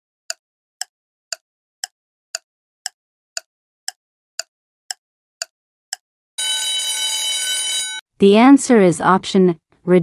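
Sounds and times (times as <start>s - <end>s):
bell-like timer alarm: 6.4s - 8.0s.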